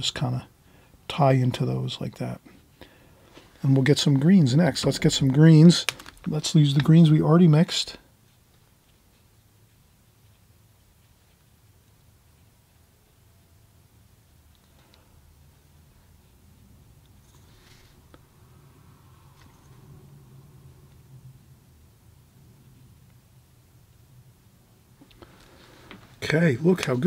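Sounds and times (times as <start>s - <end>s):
steady low hum: 0.0s - 27.0s
brush dragging across paper: 17.3s - 18.4s.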